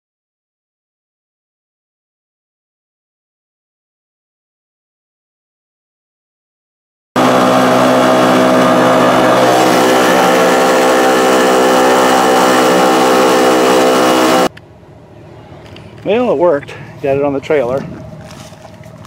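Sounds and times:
outboard motor running: 0:07.2 - 0:14.5
water churning: 0:07.2 - 0:14.5.

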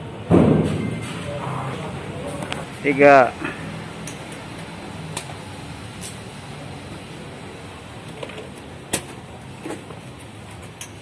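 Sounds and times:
room noise: 0:00.0 - 0:10.8
loud thump: 0:00.3 - 0:01.4
faint voices: 0:01.1 - 0:03.6.

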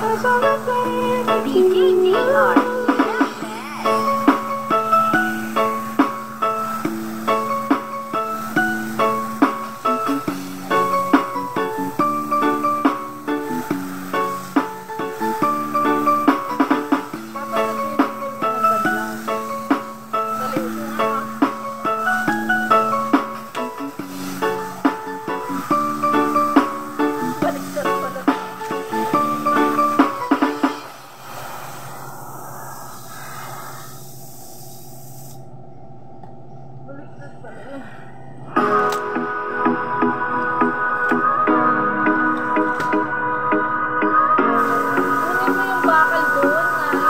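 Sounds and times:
muffled steady hiss: 0:00.0 - 0:47.0.

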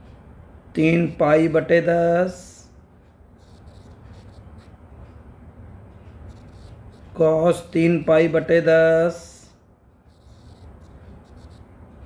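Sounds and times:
low steady hum: 0:00.0 - 0:12.0
stylus scratching on a screen: 0:03.3 - 0:05.1, 0:06.1 - 0:12.0.

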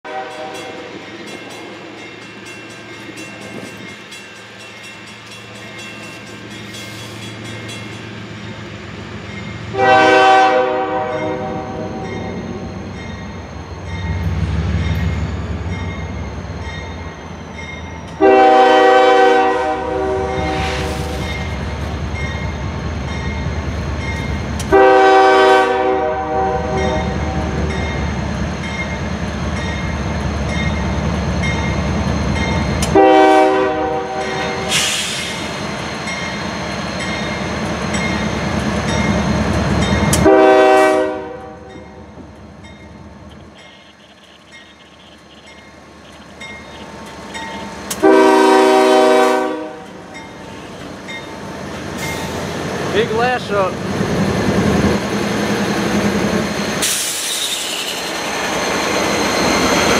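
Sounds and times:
locomotive air horn blasts: 0:00.0 - 0:00.9, 0:09.7 - 0:12.4, 0:18.2 - 0:21.1, 0:24.7 - 0:27.4, 0:32.9 - 0:34.8, 0:40.2 - 0:41.7, 0:48.0 - 0:50.0
rumble of moving locomotives: 0:00.0 - 0:59.9.

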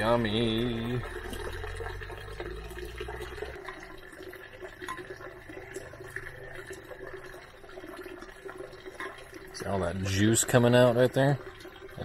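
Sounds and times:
liquid trickling and dripping: 0:00.0 - 0:12.0.

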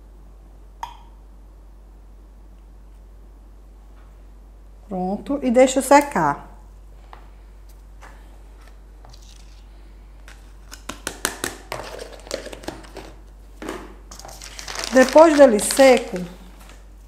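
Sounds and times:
paper rustling: 0:08.6 - 0:10.9, 0:14.1 - 0:16.8.

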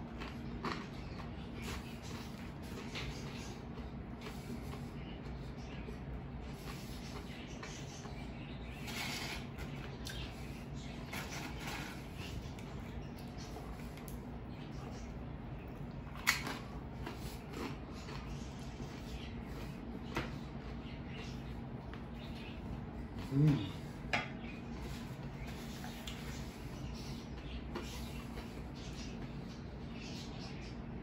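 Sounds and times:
chewing: 0:00.0 - 0:08.2, 0:08.8 - 0:29.3
steady low hum: 0:00.0 - 0:31.0.

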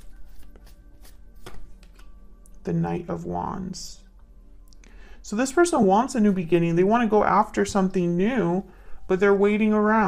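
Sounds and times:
faint background music: 0:00.0 - 0:10.0
cards clicking and tapping: 0:00.3 - 0:02.2.

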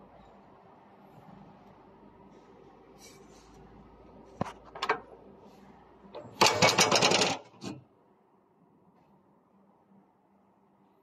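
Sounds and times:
metallic rattling clatter: 0:06.2 - 0:07.8.

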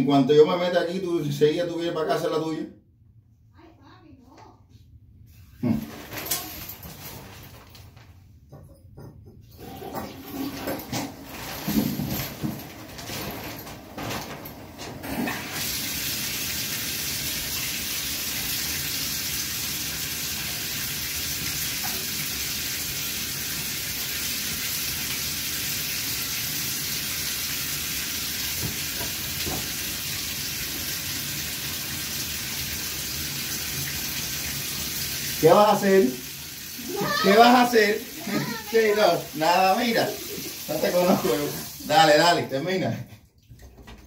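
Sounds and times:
shower water spraying: 0:09.6 - 0:14.4, 0:15.0 - 0:42.4.

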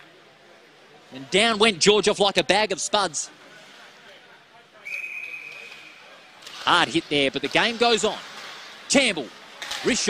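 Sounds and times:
ice rink background noise: 0:00.0 - 0:10.0
referee's whistle long blast: 0:04.8 - 0:06.0.

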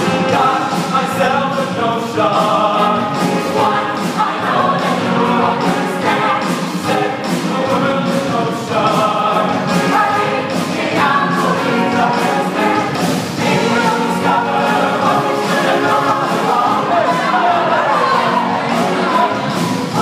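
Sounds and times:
accompaniment with steady beat: 0:00.0 - 0:20.0
mixed choir singing: 0:00.0 - 0:20.0.

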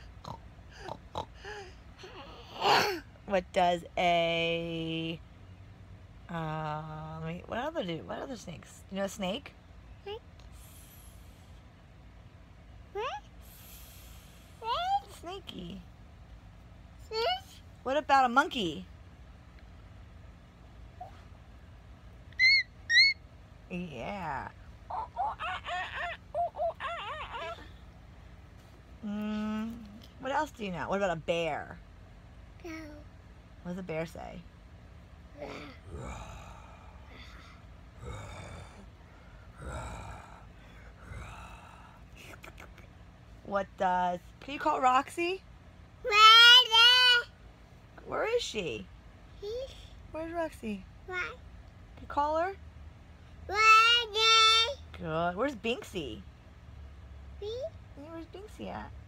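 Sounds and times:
toddler oinking like a pig: 0:24.9 - 0:27.7.

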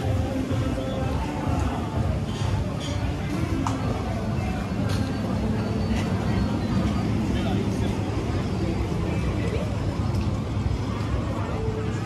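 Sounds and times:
passersby's voices: 0:00.0 - 0:12.0
road traffic rumble: 0:00.0 - 0:12.0.

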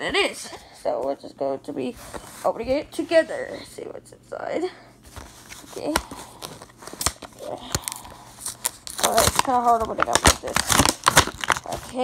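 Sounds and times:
plastic packaging clicks and crackles: 0:05.2 - 0:12.0.

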